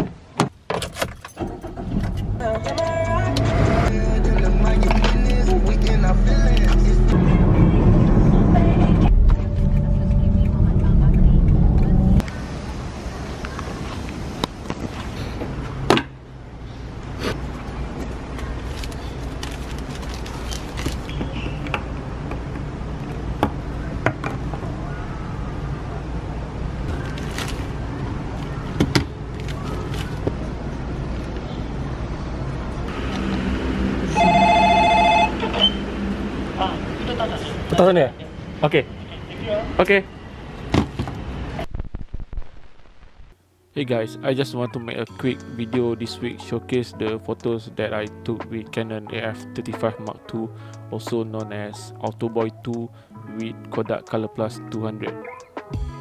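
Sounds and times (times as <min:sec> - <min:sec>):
electronic two-tone ringing: 0:34.1 - 0:35.8.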